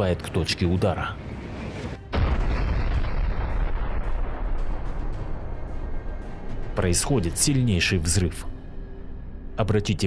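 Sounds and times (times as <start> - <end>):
explosion blast: 2.1 - 5.6.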